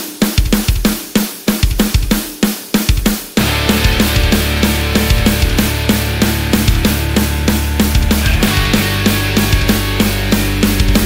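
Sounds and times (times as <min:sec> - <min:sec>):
rock drum kit playing: 0:00.0 - 0:11.0.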